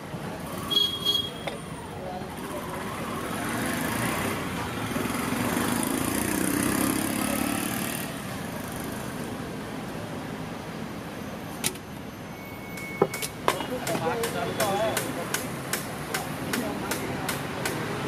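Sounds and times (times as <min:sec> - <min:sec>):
road traffic: 0:00.0 - 0:18.0
vehicle passing: 0:02.3 - 0:09.6.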